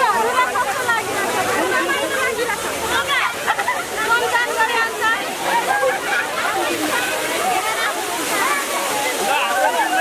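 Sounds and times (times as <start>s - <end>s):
crowd shouting and laughing: 0.0s - 10.0s
water gushing and splashing: 0.0s - 10.0s.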